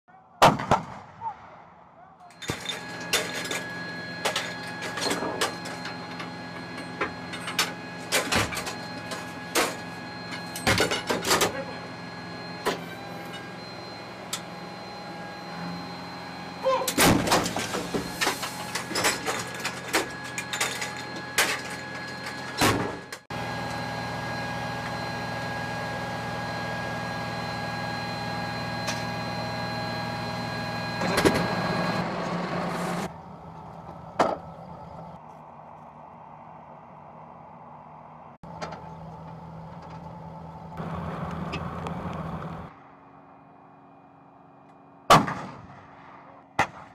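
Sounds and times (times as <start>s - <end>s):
vehicle machinery humming: 2.3s - 45.1s.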